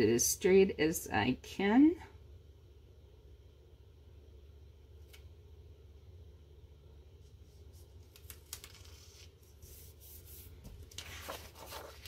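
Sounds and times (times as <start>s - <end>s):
paper rustling: 7.7s - 12.0s.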